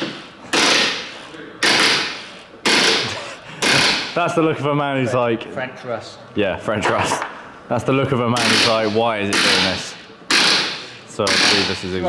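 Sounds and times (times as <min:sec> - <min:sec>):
wrench on rusted bolts: 0:08.4 - 0:11.8.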